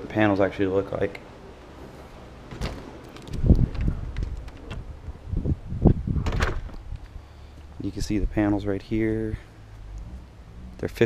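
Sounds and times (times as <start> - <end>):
low rumbling on microphone: 1.4 - 11.0
door opening and shutting: 1.8 - 5.1, 5.9 - 6.9
latch knocks and thumps: 2.4 - 5.0, 6.2 - 6.8.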